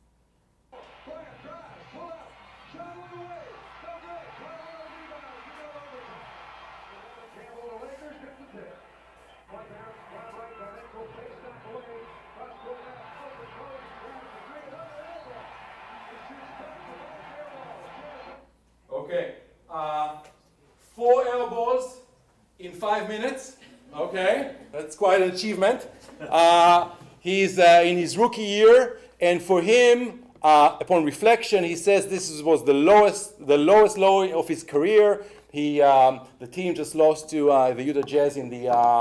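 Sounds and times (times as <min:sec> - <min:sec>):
arena crowd noise: 0:00.7 - 0:19.2
commentator talking: 0:09.5 - 0:15.4.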